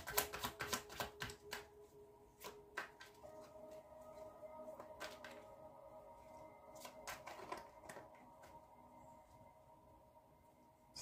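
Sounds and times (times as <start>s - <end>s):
cards being shuffled: 0.0s - 3.8s, 4.8s - 5.5s, 6.7s - 8.6s
soft background music: 0.0s - 11.0s.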